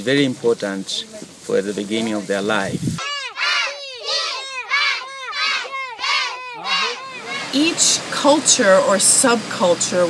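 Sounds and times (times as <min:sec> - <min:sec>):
children chanting in unison: 0:03.0 - 0:08.1.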